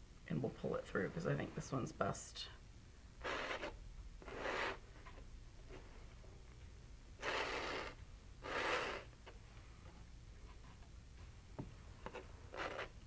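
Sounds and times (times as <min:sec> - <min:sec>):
palette knife scraping paint: 0:03.2 - 0:04.8, 0:07.2 - 0:09.1, 0:12.0 - 0:13.0.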